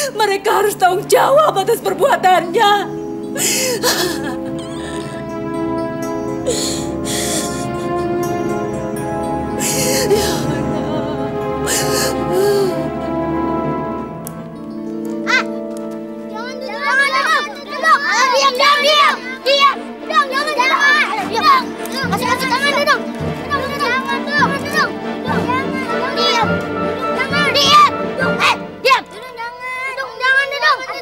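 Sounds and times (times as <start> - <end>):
background music: 0.0 - 31.0
children shouting and chattering: 0.0 - 31.0.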